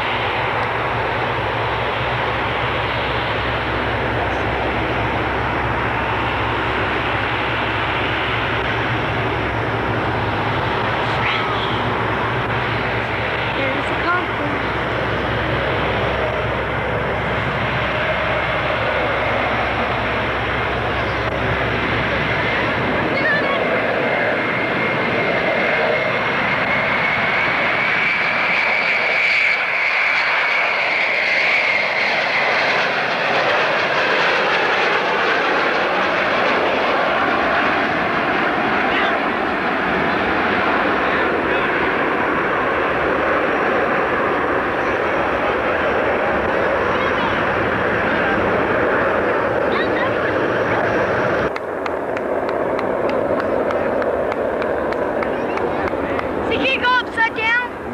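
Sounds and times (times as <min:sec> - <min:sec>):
high jet engine whine: 0:00.0 - 0:57.9
jet aircraft low pass: 0:00.0 - 0:57.9.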